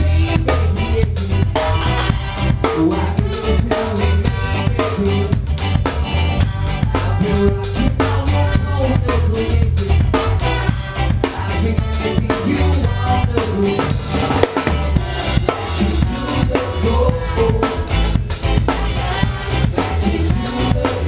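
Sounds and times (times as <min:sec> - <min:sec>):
ska band playing: 0:00.0 - 0:21.0
snare and bass drum beat: 0:00.0 - 0:21.0.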